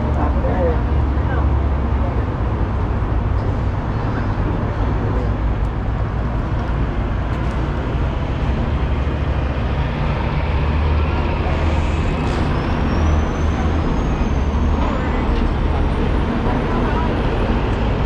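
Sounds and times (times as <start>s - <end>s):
street traffic: 0.0s - 18.0s
truck diesel engine rumbling: 0.0s - 18.0s.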